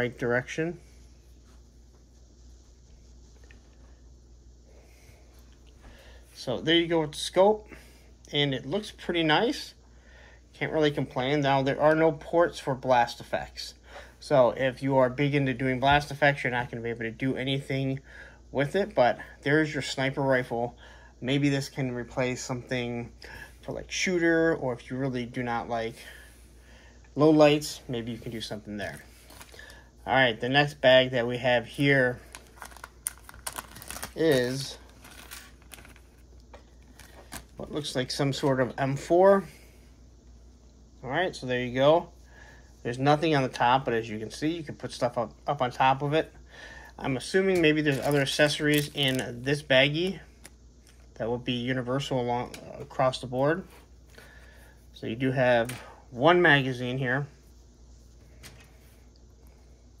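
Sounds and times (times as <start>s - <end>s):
low steady hum: 0.0s - 60.0s
plastic bag crinkling: 31.6s - 38.5s, 47.2s - 49.7s.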